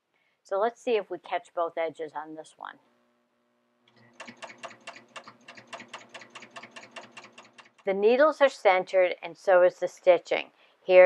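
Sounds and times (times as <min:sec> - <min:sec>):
serger sewing machine running: 0:04.0 - 0:07.9
needle-stroke clicks: 0:04.1 - 0:07.9.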